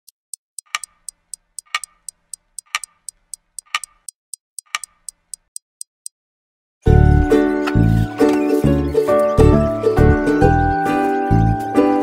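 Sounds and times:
clock ticking: 0.0 - 6.2
heavier clock tock: 0.6 - 5.6.

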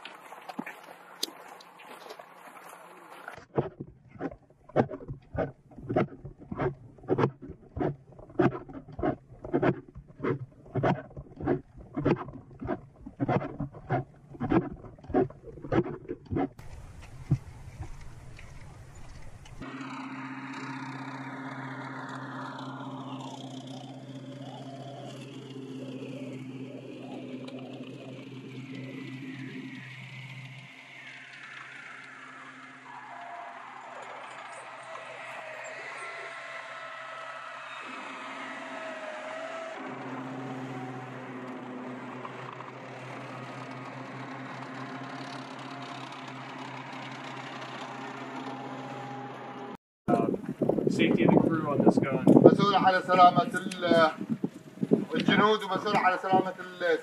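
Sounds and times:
track and running-gear noise: 0.0 - 49.8, 50.4 - 57.0
tracked vehicle engine drone: 0.0 - 57.0
rising whine: 4.2 - 56.8.

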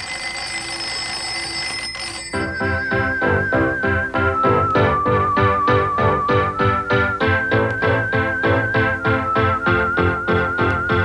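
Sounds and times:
alarm clock bells ringing: 0.0 - 3.3.

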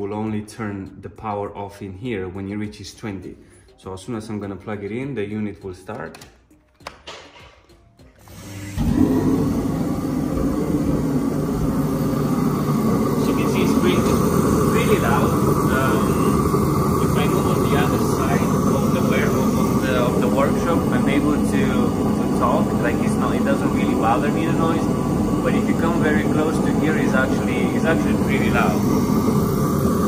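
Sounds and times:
diesel heater fan and burner: 8.2 - 30.0.

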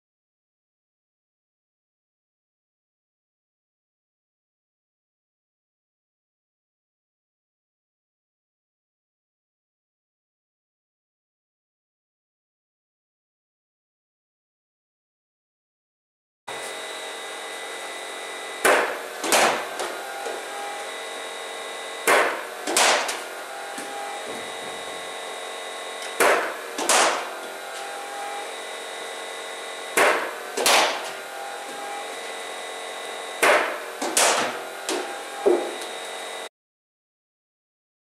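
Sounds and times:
bowling machine humming: 16.5 - 36.5
ball fired from machine: 18.6 - 19.7, 22.0 - 23.2, 26.2 - 27.3, 30.0 - 31.1, 33.4 - 34.6
bat striking ball: 18.6 - 19.9, 22.0 - 23.2, 26.1 - 27.3, 30.0 - 31.1, 33.4 - 34.6.

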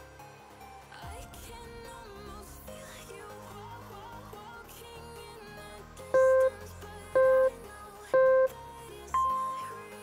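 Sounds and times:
background music: 0.0 - 10.0
short electronic beeps: 6.2 - 6.6, 7.2 - 7.6, 8.2 - 8.6, 9.2 - 9.9.

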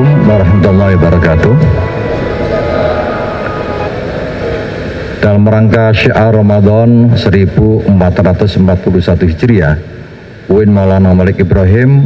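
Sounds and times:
droning ambient chord: 0.0 - 11.6.

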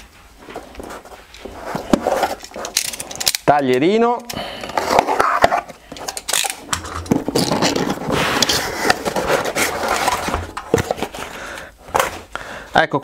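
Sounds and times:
cardboard scraping and rustling: 0.4 - 2.8, 4.7 - 5.9, 7.0 - 12.3.

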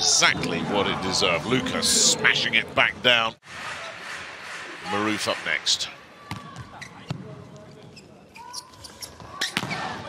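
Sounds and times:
crowd murmur and voices: 0.0 - 10.0
shoe squeaks: 7.8 - 9.9.

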